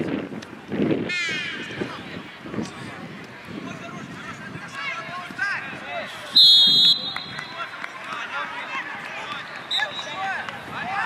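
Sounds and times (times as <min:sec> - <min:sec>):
general noise of play: 0:00.0 - 0:11.0.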